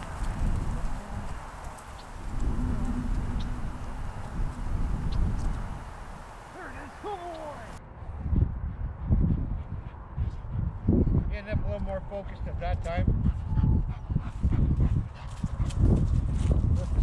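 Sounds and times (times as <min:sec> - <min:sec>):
wind buffeting microphone: 0:00.0 - 0:17.0
short gliding calls: 0:01.4 - 0:07.8.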